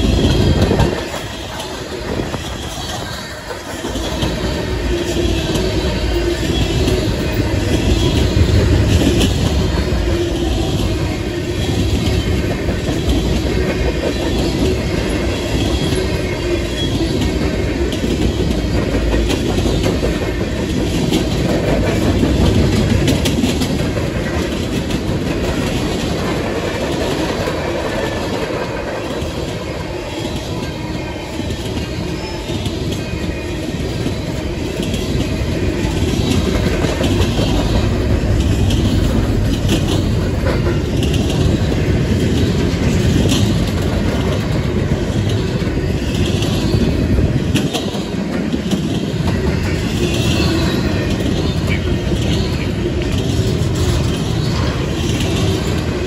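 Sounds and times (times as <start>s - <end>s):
train wheels on rails: 0.0s - 56.0s.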